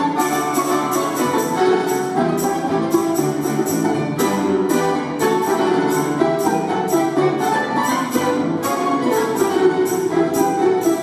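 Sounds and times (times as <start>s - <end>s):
folk ensemble playing: 0.0s - 11.0s.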